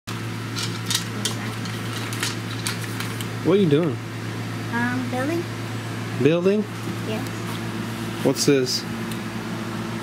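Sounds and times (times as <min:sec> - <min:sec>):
low room hum: 0:00.1 - 0:10.0
plastic parts clicking and rattling: 0:00.6 - 0:03.2.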